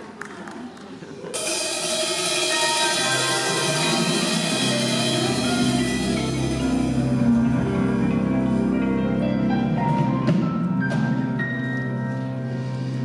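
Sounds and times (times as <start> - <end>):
cymbal shimmer: 1.4 - 7.4
jazz ensemble playing: 1.4 - 13.0
deep bass: 3.0 - 10.5.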